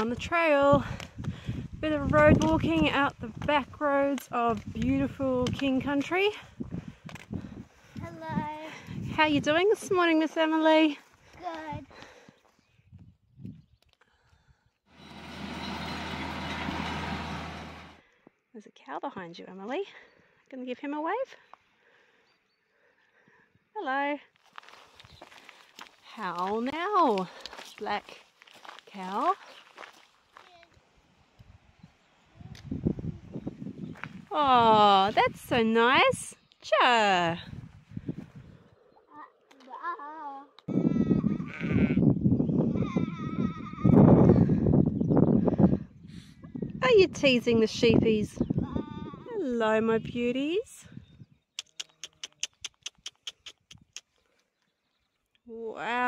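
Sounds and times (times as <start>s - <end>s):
tractor diesel engine droning: 14.9s - 18.0s
sheep bleating: 40.7s - 42.1s.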